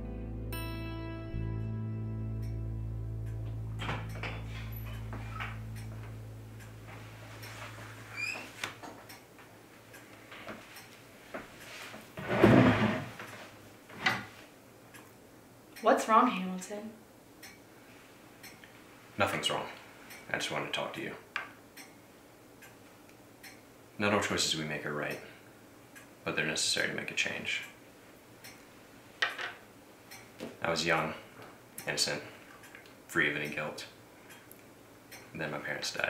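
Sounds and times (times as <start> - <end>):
low steady hum: 0.0 - 36.0
grandfather clock ticking: 3.2 - 7.7
clock ticking faintly: 4.9 - 7.7, 17.4 - 17.7, 21.7 - 23.7, 28.4 - 28.7, 30.1 - 30.4, 31.7 - 35.4.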